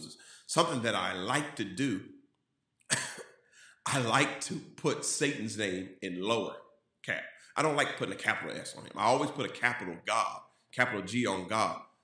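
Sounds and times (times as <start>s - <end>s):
man coughing: 2.9s - 3.4s.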